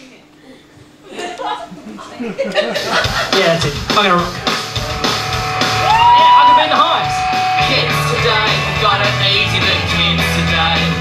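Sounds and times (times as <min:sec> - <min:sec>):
bass line: 0:03.1 - 0:11.0
person yelling: 0:05.8 - 0:07.1.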